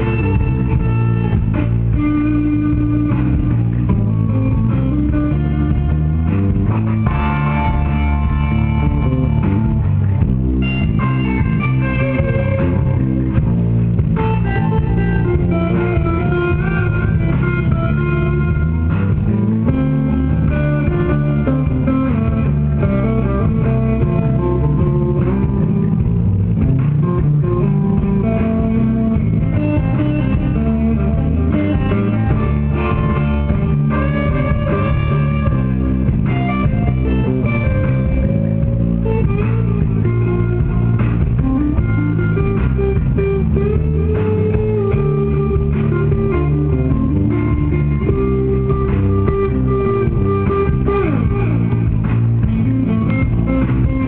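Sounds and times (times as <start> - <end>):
electric bass: 0.0 - 54.0
electric guitar: 0.0 - 54.0.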